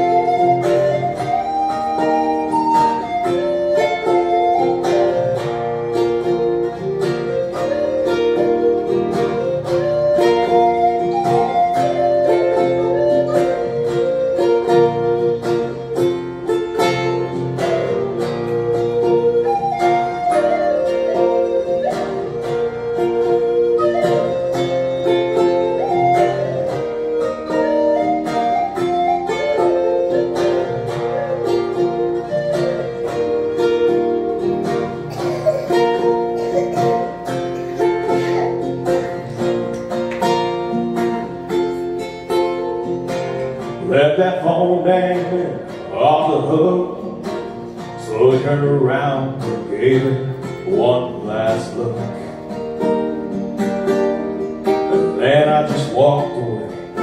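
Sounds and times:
wooden flute melody: 0.0 - 44.0
strummed acoustic guitar: 0.0 - 57.0.

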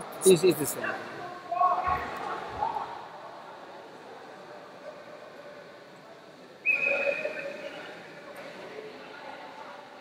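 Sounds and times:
low murmur of hall: 0.0 - 10.0
whistle blast: 6.6 - 7.6.

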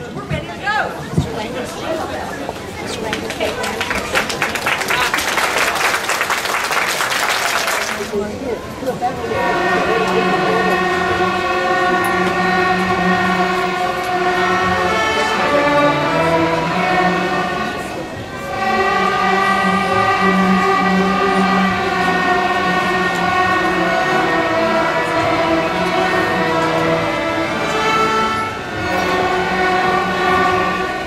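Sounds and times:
string orchestra holding long notes: 0.0 - 31.0.

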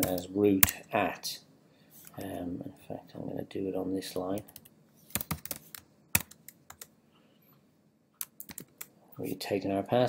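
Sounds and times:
computer keyboard typing: 0.0 - 0.2, 4.4 - 6.9, 8.2 - 8.9.

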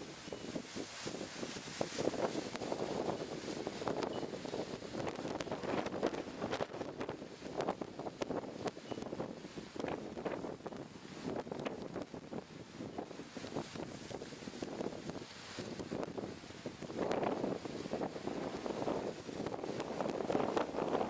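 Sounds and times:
gusty wind buffeting microphone: 0.0 - 21.0.

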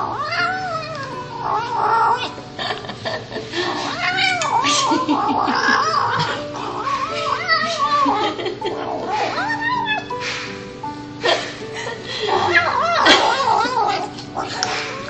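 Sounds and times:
kitten growling meows: 0.0 - 2.4, 3.6 - 8.1, 8.7 - 10.4, 12.3 - 15.0.

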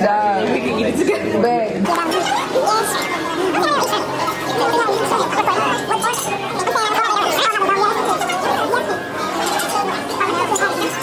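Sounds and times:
lively chatter of voices: 0.0 - 11.0.

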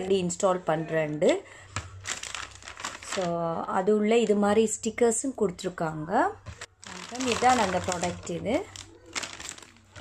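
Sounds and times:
plastic bag crinkling: 1.3 - 3.5, 6.5 - 10.0
woman speaking: 3.1 - 8.8.

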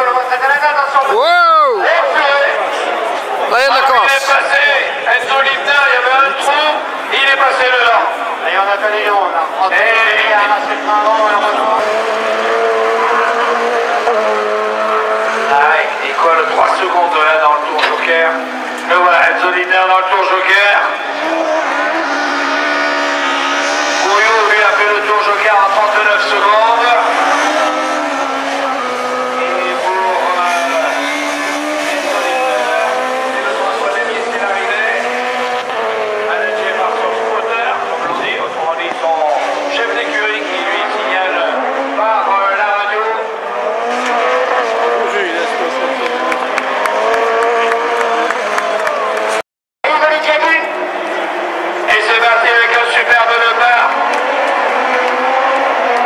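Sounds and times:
car engine revving: 2.1 - 56.0.

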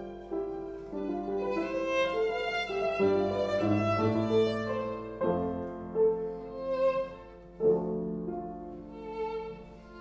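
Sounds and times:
piano chords: 0.0 - 10.0
violin melody: 0.0 - 10.0.

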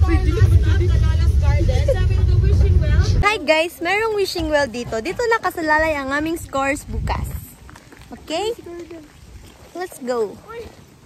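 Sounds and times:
shuttle vehicle rumble: 0.0 - 3.3.

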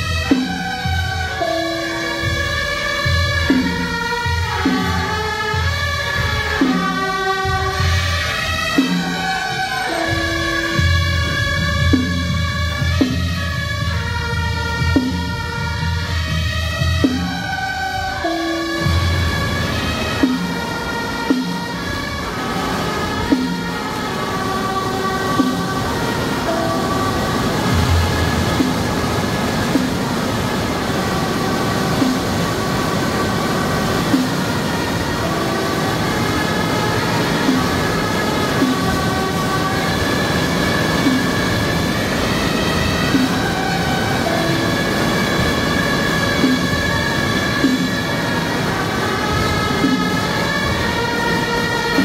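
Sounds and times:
shawm ensemble playing melody: 0.0 - 52.0
struck percussion beat: 0.0 - 52.0.

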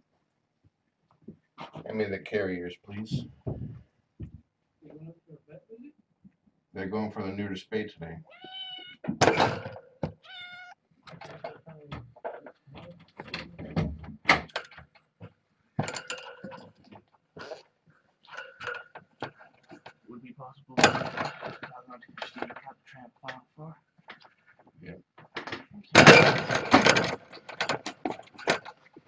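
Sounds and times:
knocks and rustling of handling: 0.6 - 2.0, 3.0 - 4.6, 11.0 - 20.1, 20.8 - 29.0
kitten meowing: 8.3 - 9.1, 10.2 - 10.8.

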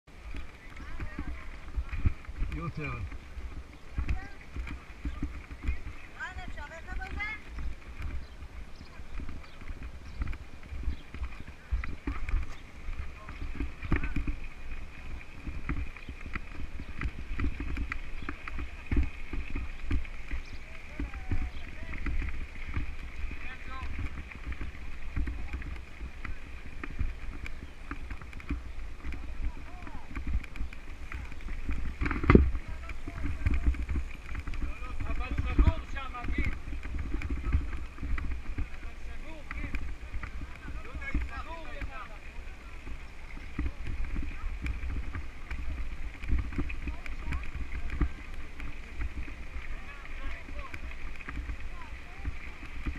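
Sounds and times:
bike tyres crunching over gravel: 0.1 - 52.9
voices of riders: 0.1 - 52.9
wind rumble on microphone: 0.1 - 52.9.

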